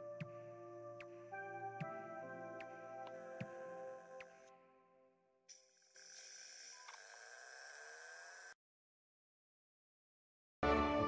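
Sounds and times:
camcorder hiss: 5.5 - 8.6
lens zoom whine rising: 5.5 - 8.6.

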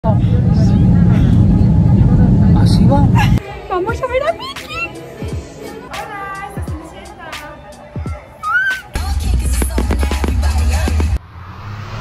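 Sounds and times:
airliner cabin rumble: 0.0 - 3.4
voices: 0.1 - 9.0.

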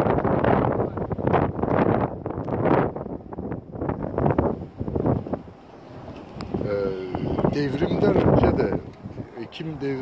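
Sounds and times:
wind gusting over microphone: 0.0 - 10.0.

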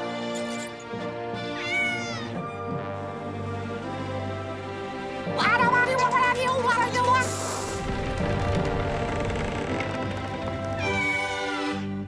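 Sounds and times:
cartoon background music: 0.0 - 12.0.

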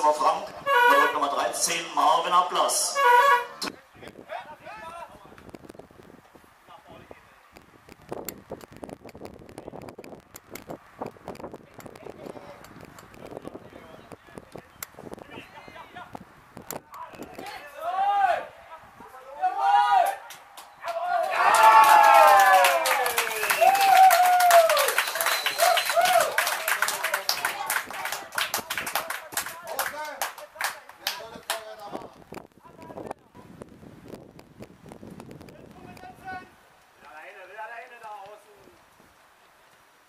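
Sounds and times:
voices: 0.0 - 5.4, 11.6 - 33.5
crowd applauding: 20.0 - 31.7.

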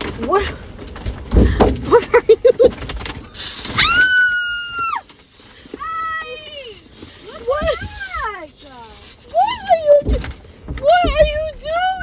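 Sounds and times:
hissing burst: 3.4 - 4.5.

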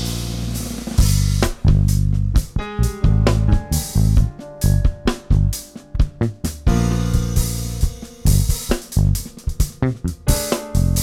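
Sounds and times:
electric bass punchy low notes: 0.0 - 11.0
sharp drum kit hits: 0.0 - 11.0
electric keyboard: 2.4 - 11.0.

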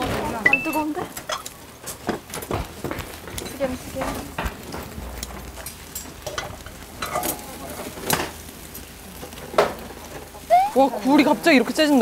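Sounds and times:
flames flaring: 0.0 - 12.0
meat sizzling on grill: 0.0 - 12.0.

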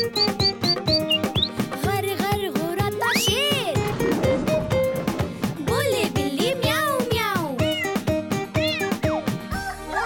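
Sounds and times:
light children's music: 0.0 - 10.0
cat meowing: 7.6 - 8.0, 8.6 - 9.2.

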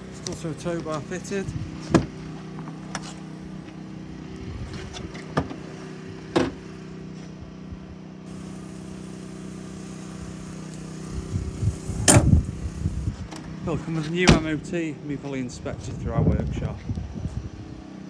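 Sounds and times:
tailgate clunk: 1.8 - 3.2, 4.9 - 5.6, 6.3 - 6.6, 12.0 - 12.3, 14.2 - 14.6
car engine idling: 5.1 - 15.9.

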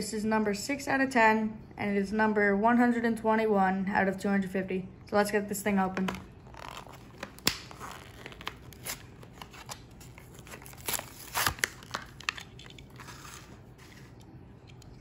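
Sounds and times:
plastic blister pack tearing: 6.1 - 14.1.

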